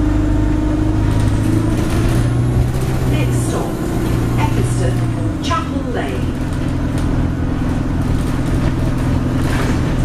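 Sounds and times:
bus engine drone: 0:00.0 - 0:10.0
road noise: 0:00.0 - 0:10.0.

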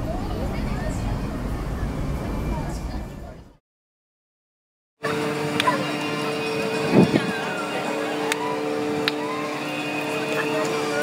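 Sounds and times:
steady two-tone hum: 0:05.0 - 0:11.0.

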